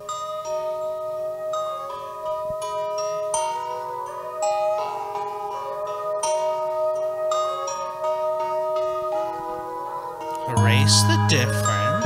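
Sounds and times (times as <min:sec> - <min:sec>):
soft ringing melody: 0:00.0 - 0:12.0.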